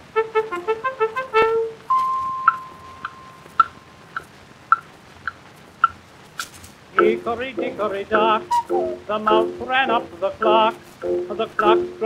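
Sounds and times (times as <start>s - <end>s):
held instrumental note: 0.0s - 4.2s, 7.0s - 12.0s
record surface hiss: 0.0s - 12.0s
pitched ticks: 1.9s - 12.0s.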